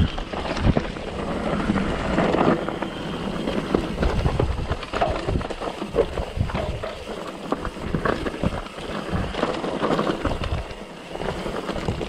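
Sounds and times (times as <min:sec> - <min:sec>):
bike rattling: 0:00.0 - 0:12.0
tyres crunching over stones: 0:00.0 - 0:12.0
wind rumble on microphone: 0:00.0 - 0:12.0.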